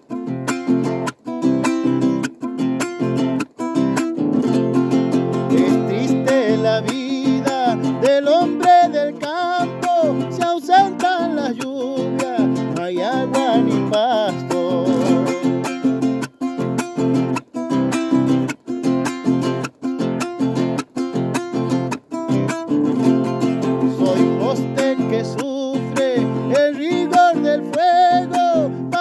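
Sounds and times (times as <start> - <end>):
nylon-string acoustic guitar strumming: 0.0 - 29.0
man singing: 5.2 - 16.1, 23.4 - 29.0.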